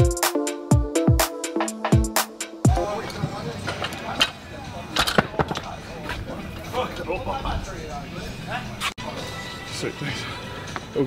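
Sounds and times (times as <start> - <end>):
voices: 2.7 - 11.0.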